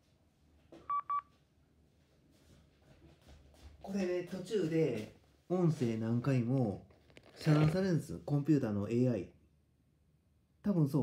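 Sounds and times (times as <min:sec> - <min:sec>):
short electronic beeps: 0:00.9 - 0:01.3.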